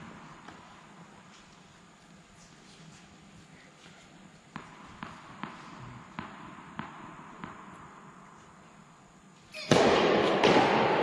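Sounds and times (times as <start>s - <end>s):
tennis ball bouncing on court: 4.5s - 8.3s, 9.7s - 11.0s.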